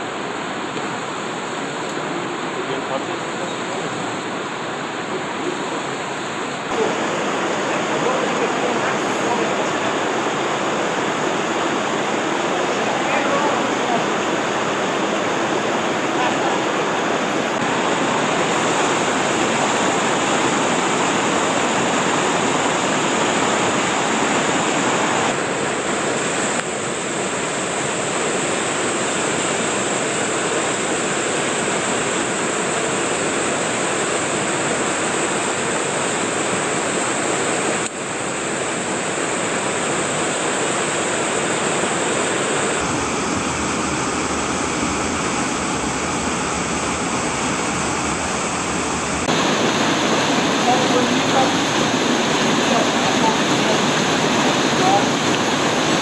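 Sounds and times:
stream rushing over cascades: 0.0s - 56.0s.

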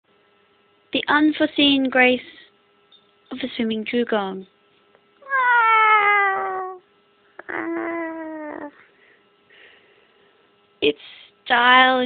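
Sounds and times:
cat meowing: 5.2s - 6.8s.

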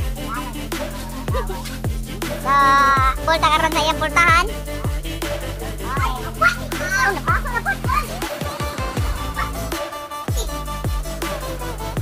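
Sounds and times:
sliding bass drops: 0.0s - 8.3s
electronic dance music: 0.0s - 12.0s
high-pitched voice: 0.2s - 4.5s, 5.8s - 8.4s, 9.2s - 10.6s.

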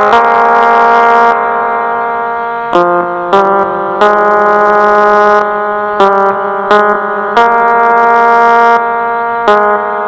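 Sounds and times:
electronic keyboard melody: 0.0s - 10.0s.

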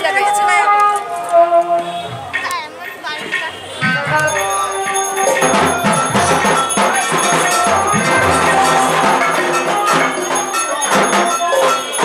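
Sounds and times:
crowd voices: 0.0s - 12.0s
music with long held notes: 3.9s - 12.0s.

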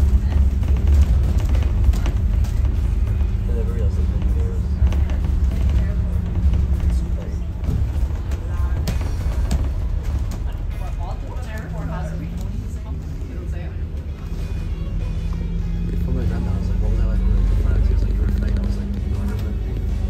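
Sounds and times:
background music: 0.0s - 20.0s
bus engine rumble: 0.0s - 20.0s
indistinct voices: 0.0s - 20.0s.

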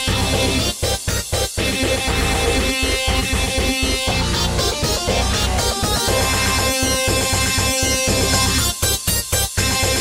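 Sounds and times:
instrumental rock music: 0.0s - 10.0s.

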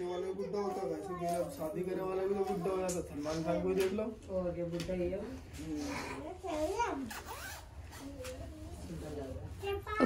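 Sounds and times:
zipper being pulled up: 7.0s - 8.4s.

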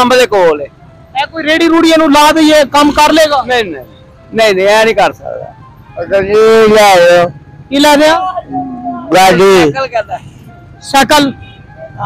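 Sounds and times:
low street traffic noise: 0.0s - 12.0s
man speaking loudly: 6.1s - 10.2s.

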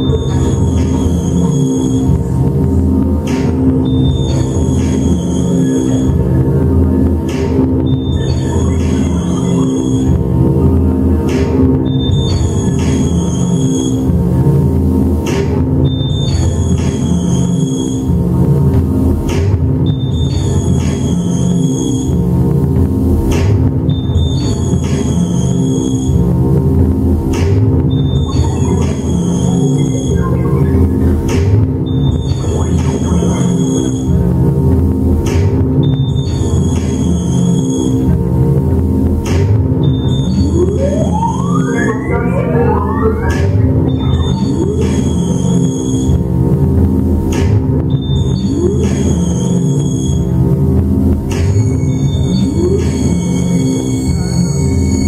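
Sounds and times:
low synthesizer drone: 0.0s - 20.0s, 26.0s - 54.5s
electronic industrial music: 0.0s - 55.0s
high steady synth tones: 39.8s - 46.8s
siren-like electronic sweep: 39.9s - 46.5s.

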